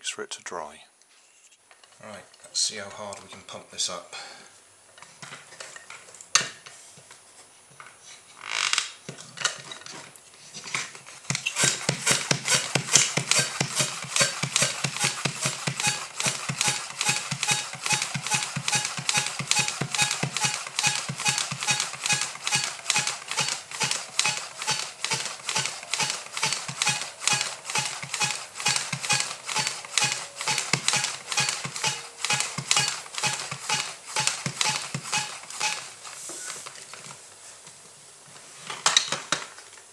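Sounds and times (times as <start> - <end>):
hand air pump strokes: 10.9 - 37.0.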